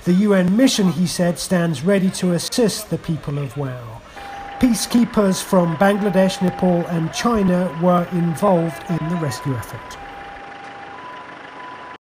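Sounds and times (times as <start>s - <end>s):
outdoor background noise: 0.0s - 12.0s
two-tone alarm: 4.1s - 12.0s.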